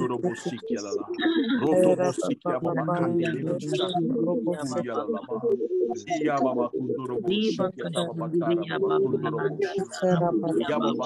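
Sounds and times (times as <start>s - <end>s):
person praying aloud: 0.0s - 5.3s, 6.0s - 11.0s.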